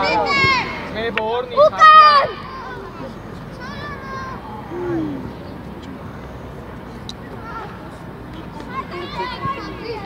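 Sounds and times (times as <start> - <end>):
faint distant voices: 0.0 - 10.0
outdoor background noise: 0.0 - 10.0.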